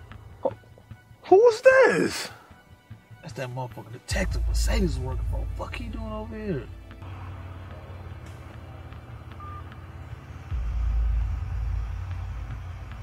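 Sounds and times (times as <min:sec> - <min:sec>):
low vehicle rumble: 0:04.2 - 0:13.0.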